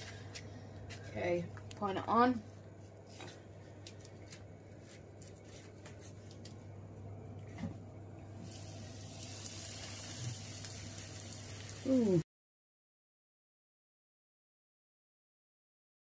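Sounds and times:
steak sizzling in hot oil: 0:08.4 - 0:11.9.

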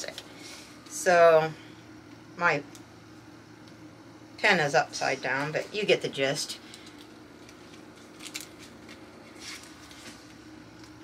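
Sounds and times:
soft paper rustle: 0:06.8 - 0:10.4.

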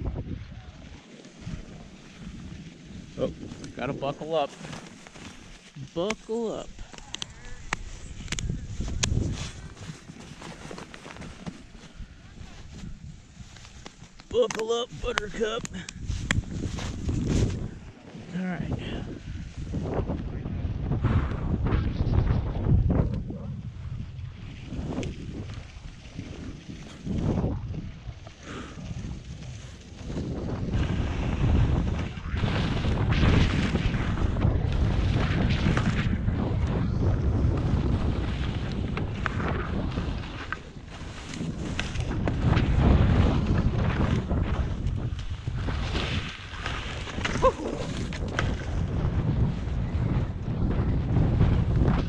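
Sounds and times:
wind buffeting microphone: 0:00.0 - 0:52.0
skis sliding through snow: 0:00.4 - 0:18.5, 0:19.2 - 0:20.0, 0:24.1 - 0:52.0.

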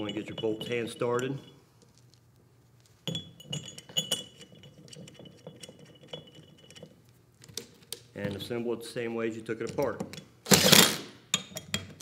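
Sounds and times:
metal bolts clinking: 0:00.0 - 0:01.6, 0:03.1 - 0:07.6.

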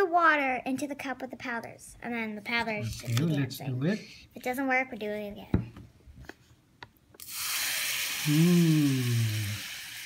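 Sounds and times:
water pouring and fizzing: 0:07.2 - 0:10.0.

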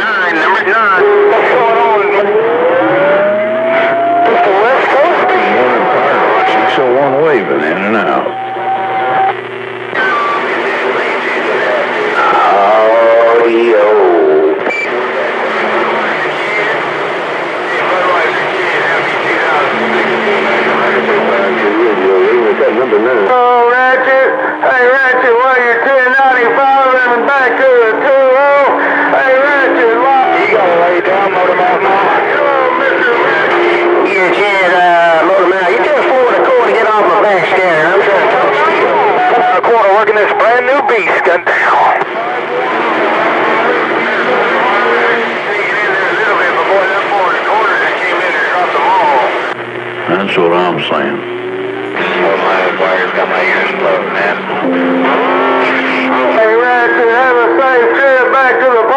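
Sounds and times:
garbled radio voices: 0:00.0 - 0:58.9
radio noise: 0:00.0 - 0:58.9
rising radio whistle: 0:00.4 - 0:12.4.

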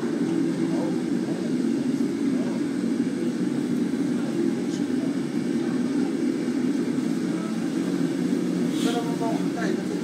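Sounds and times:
faint voices: 0:00.0 - 0:10.0
kitchen machinery drone: 0:00.0 - 0:10.0.

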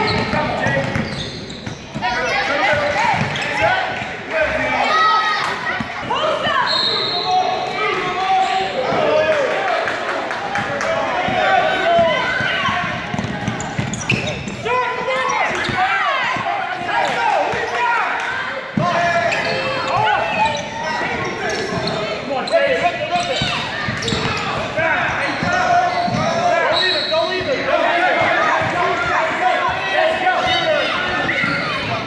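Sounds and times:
people shouting: 0:10.9 - 0:13.4, 0:27.6 - 0:32.0.

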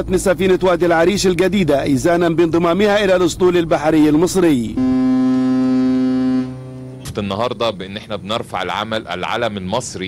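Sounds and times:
ship's horn blast: 0:04.8 - 0:07.1.

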